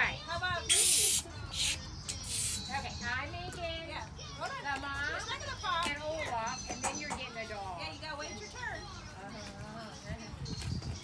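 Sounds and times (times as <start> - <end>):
balloon squeaking as twisted: 0.7 - 2.7.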